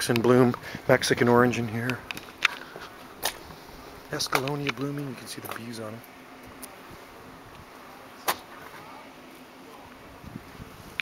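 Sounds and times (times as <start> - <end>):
faint outdoor hum: 0.0 - 11.0.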